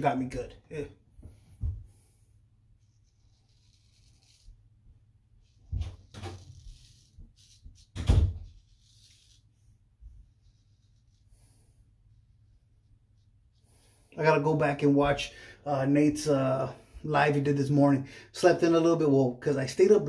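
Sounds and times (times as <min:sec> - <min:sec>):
razor scraping stubble: 0:03.0 - 0:04.6.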